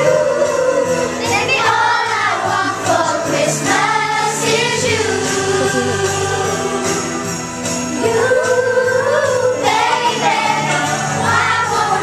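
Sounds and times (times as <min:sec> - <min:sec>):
girls singing together: 0:00.0 - 0:07.3, 0:07.9 - 0:12.0
musical accompaniment: 0:00.0 - 0:12.0.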